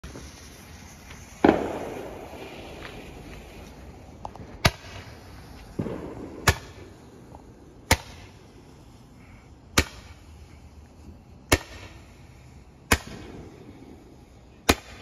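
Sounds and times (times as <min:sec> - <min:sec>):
small firework pops: 0:00.0 - 0:08.5, 0:09.7 - 0:12.2, 0:12.8 - 0:13.6, 0:14.6 - 0:15.0
firework cracks: 0:00.0 - 0:15.0
firework boom: 0:01.2 - 0:08.4.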